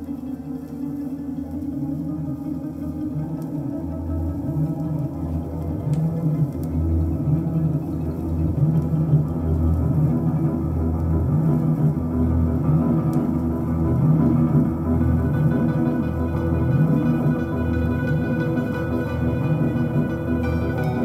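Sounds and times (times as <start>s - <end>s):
sustained musical backing: 0.0s - 21.0s
plucked string notes: 13.4s - 21.0s.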